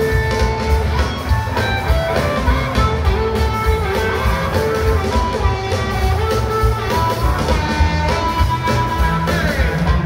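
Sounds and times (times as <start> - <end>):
bass guitar: 0.0 - 10.0
drums steady beat: 0.0 - 10.0
guitar holding notes: 0.0 - 10.0.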